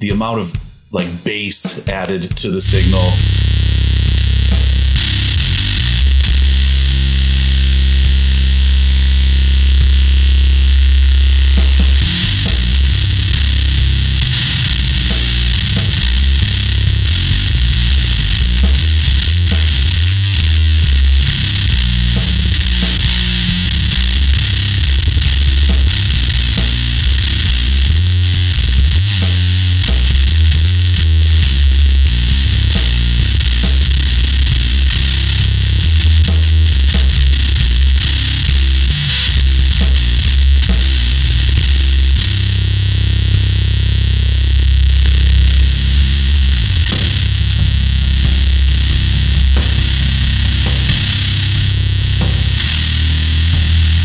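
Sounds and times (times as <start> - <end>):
heavily fuzzed electric bass riff: 0.0 - 54.0.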